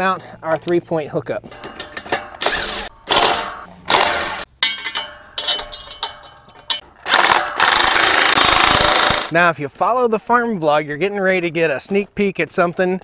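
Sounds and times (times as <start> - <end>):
impact wrench driving bolts: 1.5 - 9.3.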